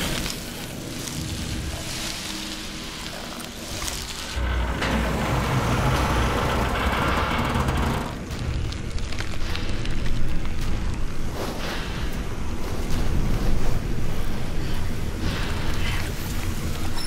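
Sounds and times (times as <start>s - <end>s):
deep grinding rumble: 3.8s - 9.3s.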